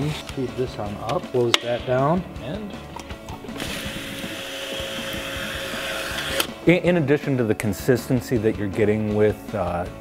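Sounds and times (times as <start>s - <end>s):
label applicator motor running: 3.6s - 6.6s.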